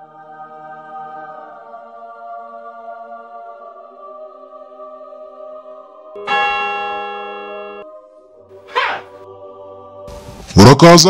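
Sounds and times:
bell strike ringing: 6.2s - 7.8s.

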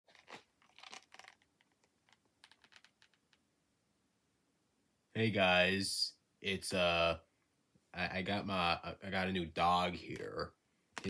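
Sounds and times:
crinkly handling clicks and rustles: 0.1s - 3.4s.

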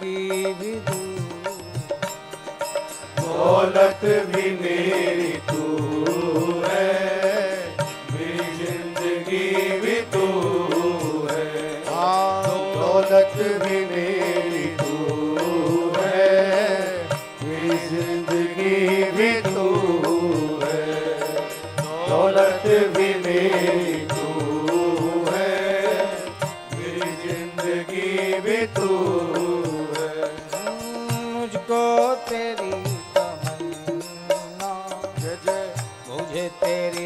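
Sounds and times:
harmoniums playing: 0.0s - 37.0s
man singing devotional song: 0.0s - 37.0s.

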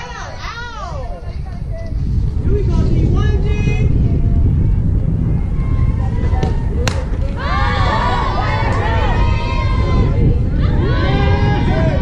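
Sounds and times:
wind buffeting microphone: 0.0s - 12.0s
people calling out: 5.4s - 12.0s.

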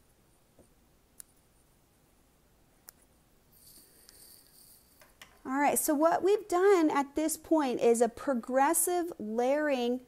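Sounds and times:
soft rustle: 3.0s - 5.0s.

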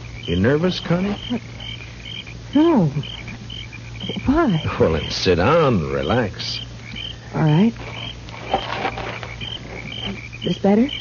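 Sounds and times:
small creatures chirping: 0.0s - 11.0s.

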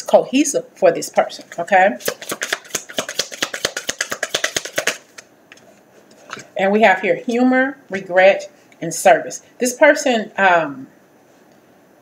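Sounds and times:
cards being shuffled: 1.5s - 5.7s.

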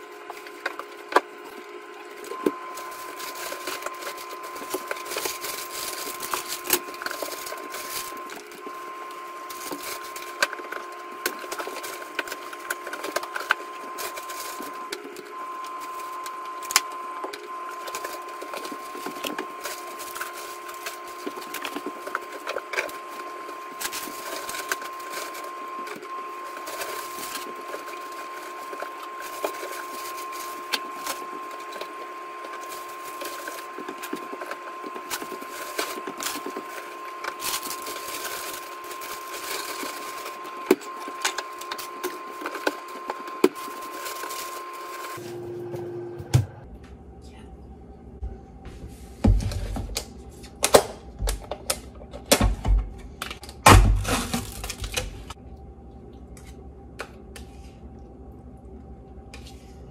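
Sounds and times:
plastic packaging rustling: 0.0s - 45.4s, 49.1s - 55.4s
steady hum: 0.0s - 59.9s.

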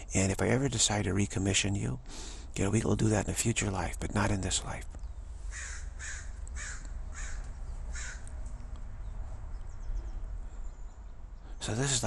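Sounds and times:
bird calling: 4.6s - 12.0s.

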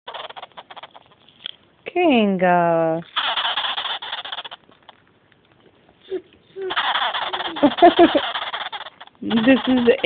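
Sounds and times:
small animal buzzing chatter: 0.0s - 1.3s, 3.0s - 5.0s, 6.1s - 10.0s.

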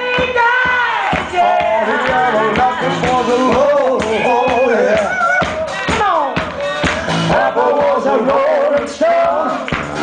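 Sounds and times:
blues band playing: 0.0s - 10.0s
drum kit beat: 0.0s - 10.0s.

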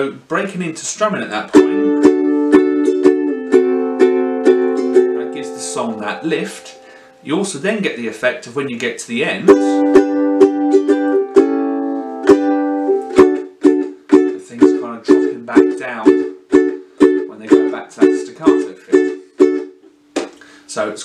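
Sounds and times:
ukulele strumming: 1.2s - 7.4s, 8.8s - 20.4s.

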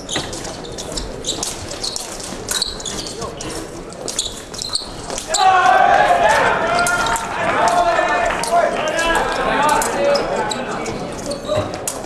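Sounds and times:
shoes squeaking and thudding: 0.0s - 5.6s, 10.1s - 12.0s
voices echoing in large hall: 0.0s - 12.0s.

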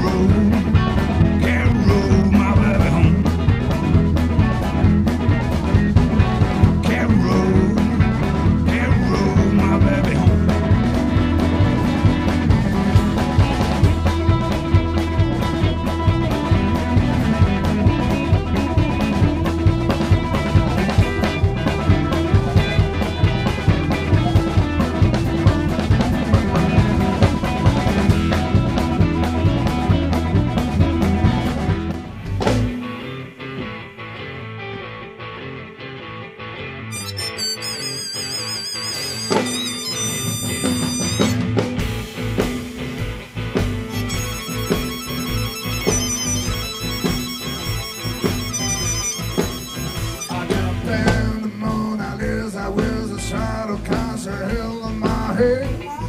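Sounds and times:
blues band with electric guitar: 0.0s - 56.0s.

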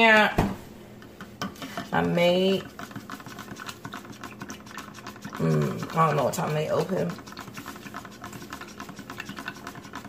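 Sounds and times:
spoon stirring in a mug: 1.0s - 10.0s.

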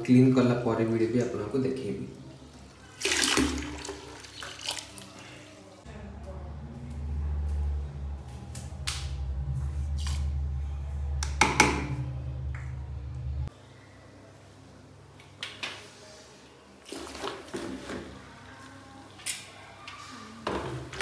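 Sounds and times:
water splashing into plastic bucket: 2.9s - 5.2s
low steady hum: 5.8s - 14.3s.

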